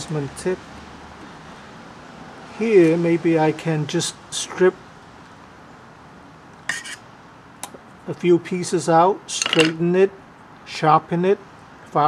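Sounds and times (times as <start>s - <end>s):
wire and metal tool clinking: 9.3s - 9.8s.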